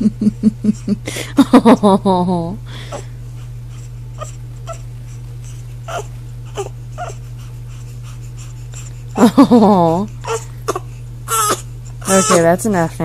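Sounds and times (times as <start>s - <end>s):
steady low hum: 0.0s - 13.0s
baby whimpering and grunting: 5.9s - 7.2s, 10.0s - 12.5s.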